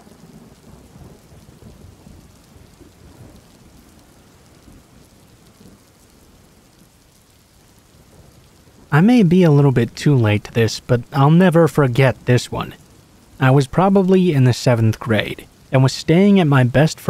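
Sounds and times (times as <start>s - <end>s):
rain falling: 0.0s - 17.0s.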